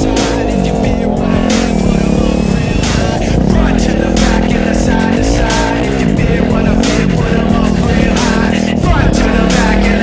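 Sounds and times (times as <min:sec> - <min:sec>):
background music: 0:00.0 - 0:10.0
dirt bike engine revving: 0:00.0 - 0:10.0.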